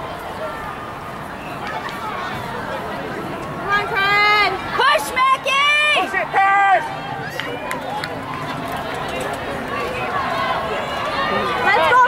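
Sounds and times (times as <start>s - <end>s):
crowd chatter: 0.0s - 12.0s
faint distant voices: 0.0s - 12.0s
spectators cheering: 3.7s - 12.0s.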